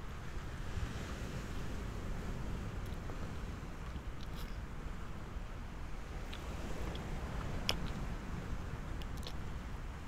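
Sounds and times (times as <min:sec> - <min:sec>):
small waves washing onto beach: 0:00.0 - 0:10.0.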